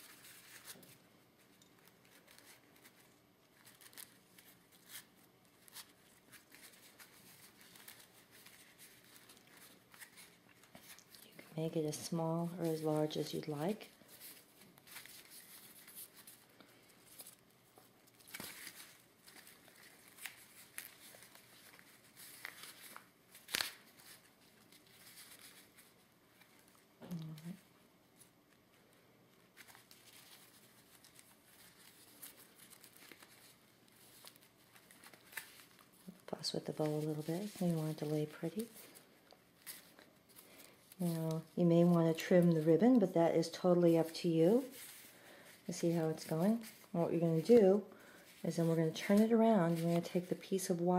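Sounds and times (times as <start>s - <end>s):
fabric rustling and crinkling: 0.0s - 50.9s.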